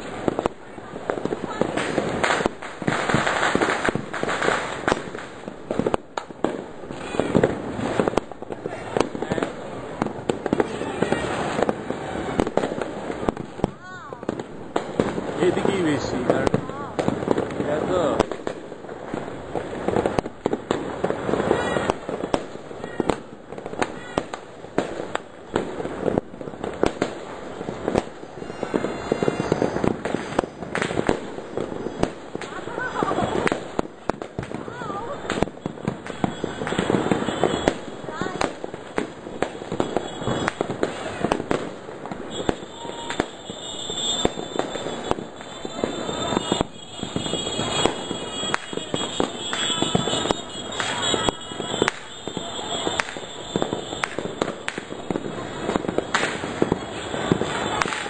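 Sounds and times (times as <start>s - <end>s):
fireworks bangs and crackles: 0.0s - 58.0s.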